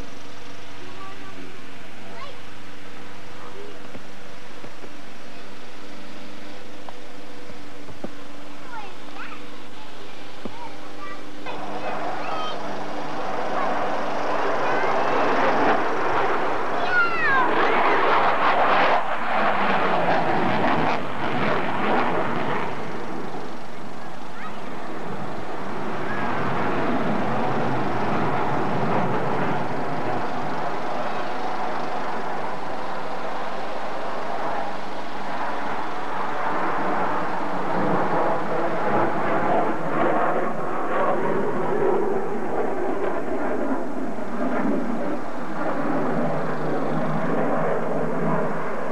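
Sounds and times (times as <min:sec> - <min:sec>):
airplane engine drone: 0:00.0 - 0:48.9.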